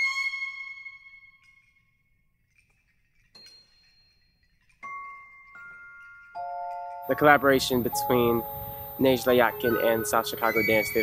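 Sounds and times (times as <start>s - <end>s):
held flute notes: 0.0s - 1.7s, 6.4s - 11.0s.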